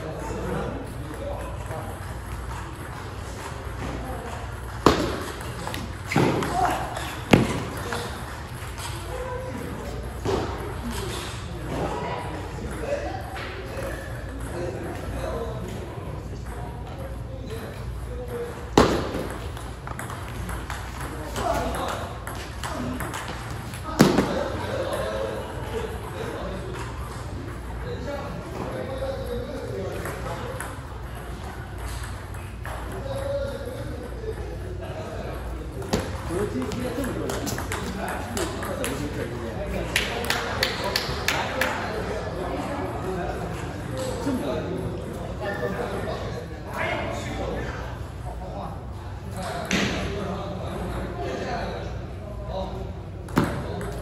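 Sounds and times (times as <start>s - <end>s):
voices in a hall: 0.0s - 54.0s.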